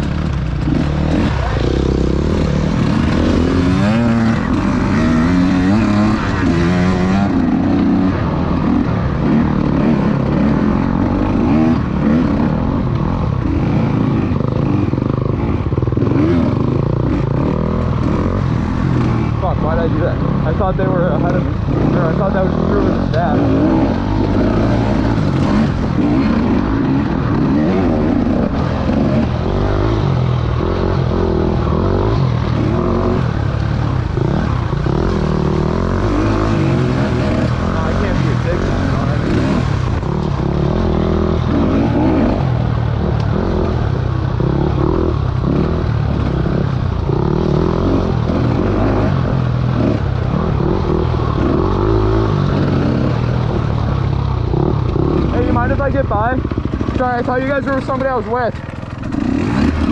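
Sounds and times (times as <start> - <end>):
two-stroke dirt bike engine revving: 0.0 - 59.9.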